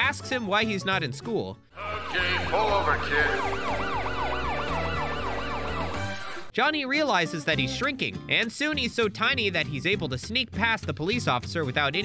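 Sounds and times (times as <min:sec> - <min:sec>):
cartoon police siren yelping: 0:01.8 - 0:06.5.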